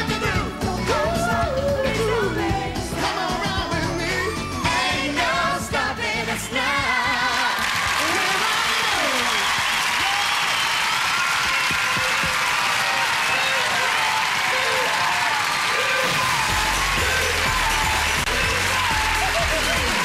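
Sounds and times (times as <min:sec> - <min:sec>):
live pop song with band: 0:00.0 - 0:07.6
solo voice singing sliding line: 0:00.0 - 0:07.6
audience applause: 0:07.2 - 0:20.0.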